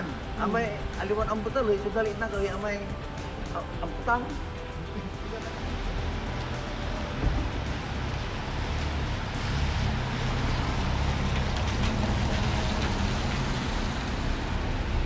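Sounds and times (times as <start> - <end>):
low engine rumble: 0.0 - 15.0
tyres hissing on wet pavement: 0.0 - 15.0.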